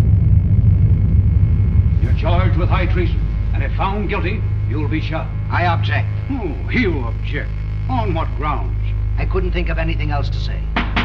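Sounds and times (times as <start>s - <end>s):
loud low rumble: 0.0s - 11.0s.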